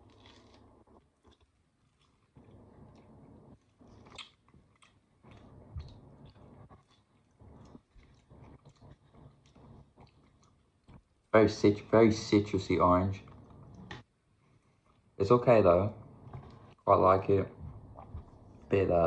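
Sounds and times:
orange rind tearing: 0:00.0 - 0:02.3.

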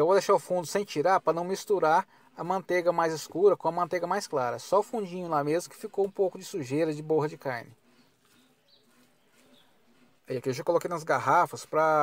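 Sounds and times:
distant bird calls: 0:04.8 - 0:11.7.

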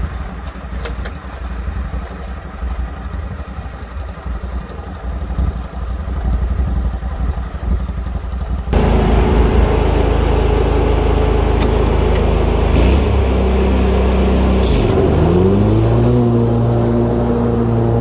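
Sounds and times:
mower engine droning: 0:00.0 - 0:18.0.

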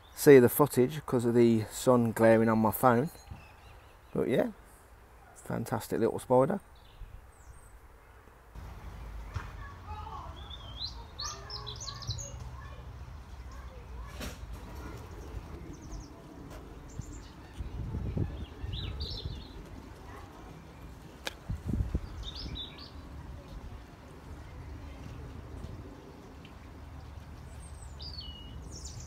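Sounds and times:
small birds chirping: 0:01.8 - 0:29.0.

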